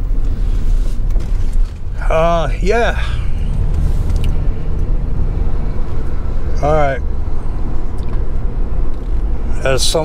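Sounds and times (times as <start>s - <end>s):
road and engine rumble in car: 0.0s - 10.0s.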